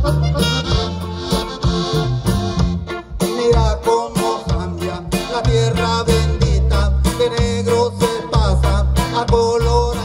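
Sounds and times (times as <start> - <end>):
guitars playing: 0.0 - 10.0.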